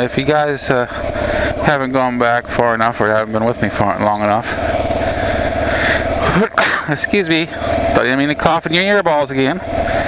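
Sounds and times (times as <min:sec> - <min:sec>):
motorcycle engine running: 0:00.0 - 0:10.0
man coughing: 0:06.3 - 0:07.0.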